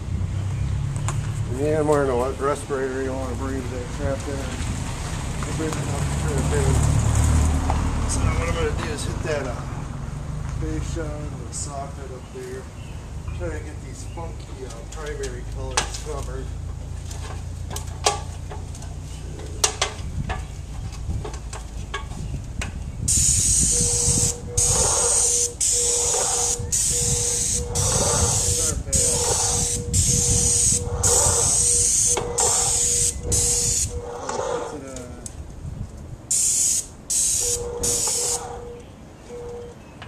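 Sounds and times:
paint spray gun hissing: 23.1s - 33.9s, 36.3s - 38.4s.

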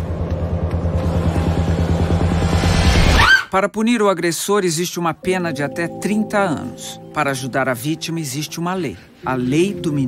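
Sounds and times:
throbbing bass drone: 0.0s - 3.2s.

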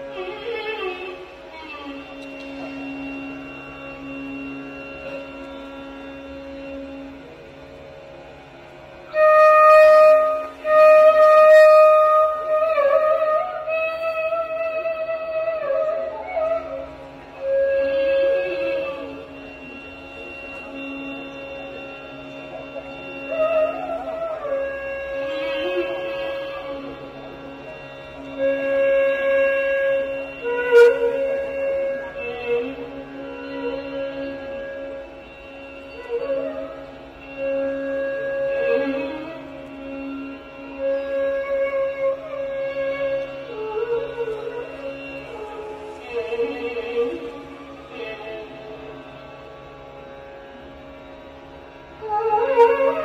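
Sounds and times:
bamboo flute playing: 0.0s - 49.8s, 51.6s - 53.0s
steady drone: 0.0s - 53.0s.

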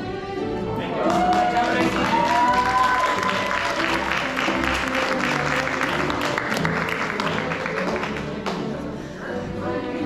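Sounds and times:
music: 0.0s - 10.0s
audience applauding: 0.9s - 8.6s.

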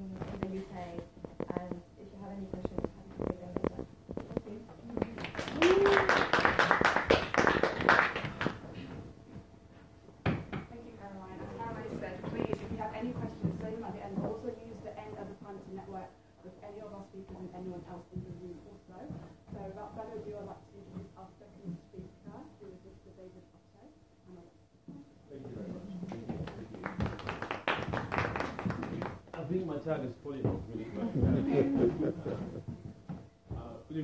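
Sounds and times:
audience clapping: 5.0s - 8.7s, 26.1s - 29.5s.

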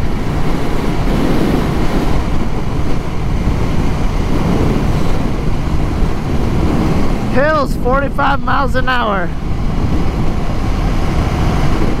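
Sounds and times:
motorcycle road and engine noise: 0.0s - 12.0s
wind rushing over microphone: 0.0s - 12.0s.

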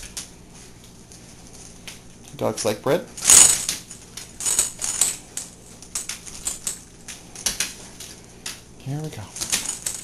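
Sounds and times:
collar tags jingling: 3.2s - 6.8s, 9.3s - 10.0s
dog nails clicking on hard floor: 9.4s - 10.0s.

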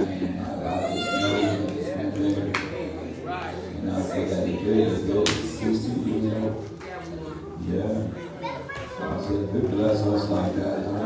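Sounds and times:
man talking into a microphone: 0.0s - 6.8s, 7.5s - 8.3s, 8.9s - 11.0s.

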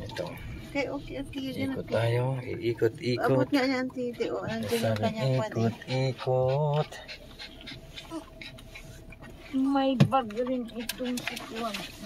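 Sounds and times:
car interior hum: 0.0s - 12.0s.

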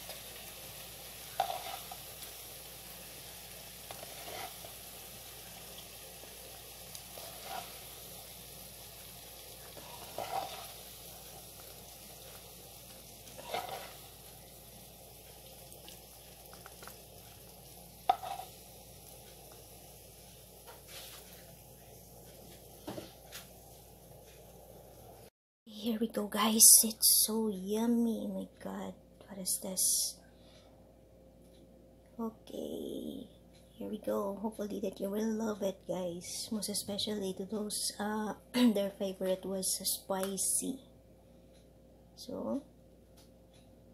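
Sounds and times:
fried chicken sizzling: 0.0s - 25.3s.

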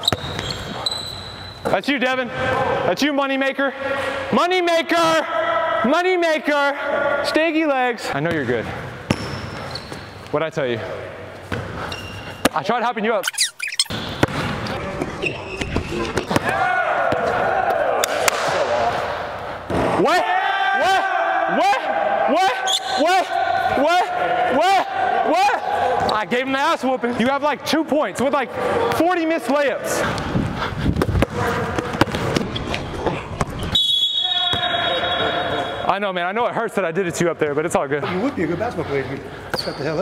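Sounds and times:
basketball bouncing on gym floor: 0.0s - 0.7s, 9.1s - 9.8s, 13.9s - 14.7s, 30.9s - 33.8s
rubber sole squeaks: 13.2s - 13.9s
basketball bouncing on floor: 30.9s - 32.8s.

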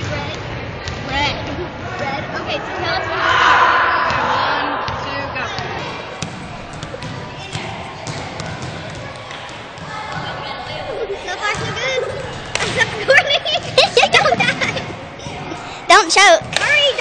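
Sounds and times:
voices: 1.2s - 17.0s
basketballs bouncing on gym floor: 6.2s - 10.8s, 11.4s - 12.9s.

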